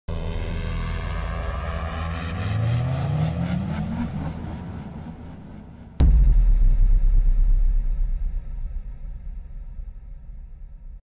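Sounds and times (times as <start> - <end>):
deep hit with low rumble: 5.9 - 11.0.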